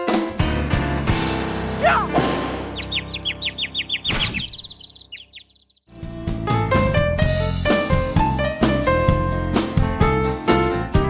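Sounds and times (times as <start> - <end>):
music: 0.0 - 4.1, 5.9 - 11.0
bird trilling: 2.7 - 5.9.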